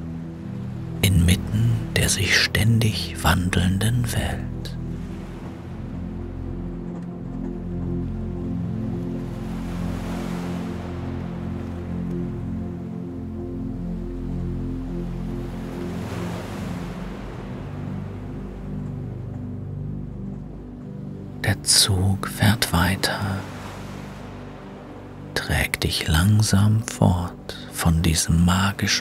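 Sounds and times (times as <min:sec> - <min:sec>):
calm ambient music with low chords: 0:00.0 - 0:29.0
ocean surf washing in: 0:21.6 - 0:29.0.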